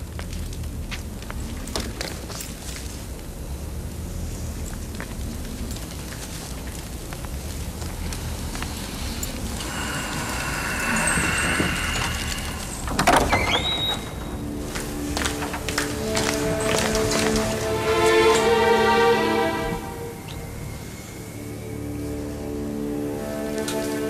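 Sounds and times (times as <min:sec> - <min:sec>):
dramatic background score music: 0:07.4 - 0:24.0.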